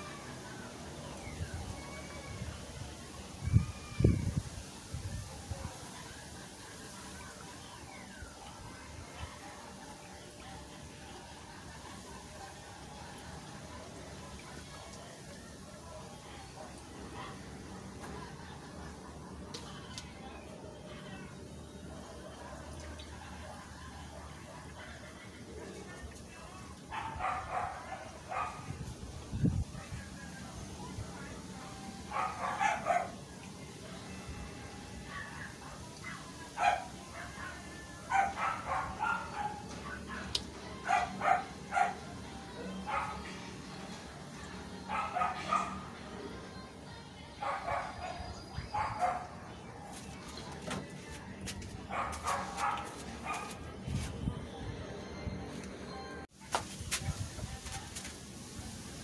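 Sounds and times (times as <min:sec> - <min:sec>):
dog barking: 0:26.9 - 0:28.7, 0:32.1 - 0:33.2, 0:36.6 - 0:37.3, 0:38.1 - 0:39.6, 0:40.9 - 0:42.0, 0:42.9 - 0:43.2, 0:44.9 - 0:45.8, 0:47.4 - 0:49.3, 0:51.9 - 0:53.6.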